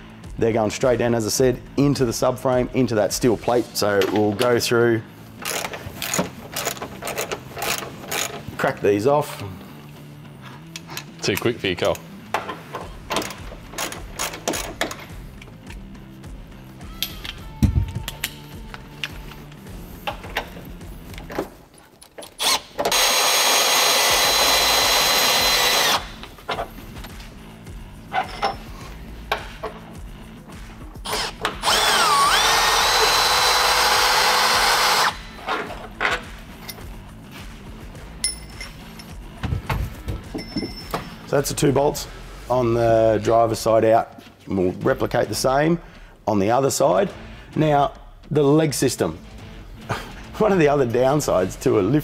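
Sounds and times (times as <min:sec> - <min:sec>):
tool handling clicks and knocks: 0:05.3 - 0:08.6, 0:10.7 - 0:15.9, 0:17.0 - 0:23.0, 0:28.1 - 0:30.0, 0:35.5 - 0:36.9, 0:38.2 - 0:41.2
cordless power tool spinning: 0:22.4 - 0:26.2, 0:31.0 - 0:35.7.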